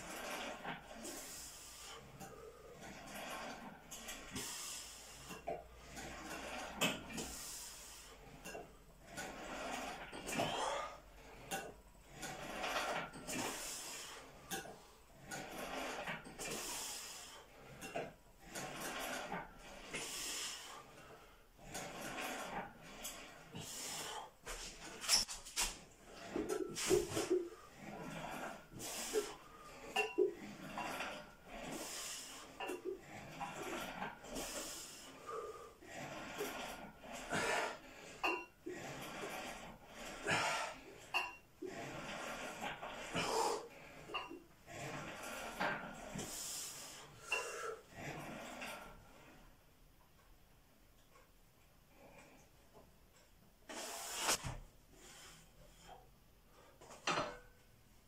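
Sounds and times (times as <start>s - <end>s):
weight plates and chain clinking: 26.2s - 34.6s
man breathing hard: 34.4s - 35.8s.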